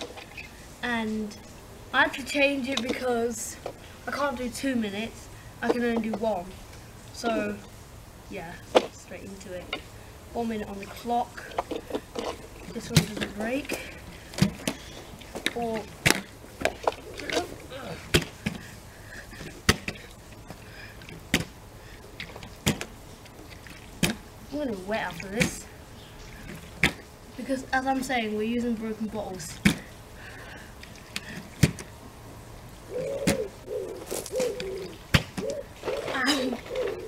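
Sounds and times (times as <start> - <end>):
pigeon cooing: 16.8 - 18.0, 32.9 - 37.0.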